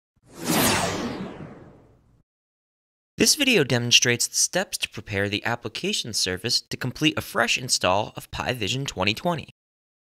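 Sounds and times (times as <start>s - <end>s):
whoosh sound effect: 0.2s - 2.1s.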